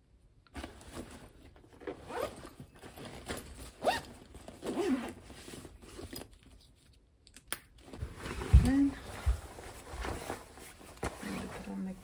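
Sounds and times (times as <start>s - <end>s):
fabric rustling: 0.6s - 6.8s, 7.9s - 12.0s
zipper being pulled: 1.8s - 2.6s, 3.7s - 5.2s.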